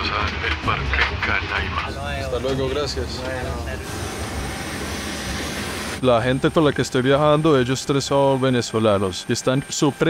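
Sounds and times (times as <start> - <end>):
jet cabin drone: 0.0 - 10.0.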